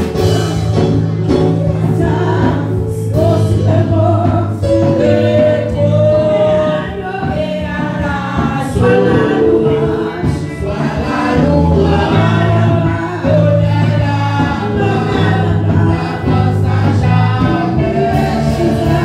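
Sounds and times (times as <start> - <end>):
woman leading gospel singing: 1.4 - 19.0
women singing backing vocals: 1.8 - 19.0
low held accompaniment notes: 8.8 - 12.8.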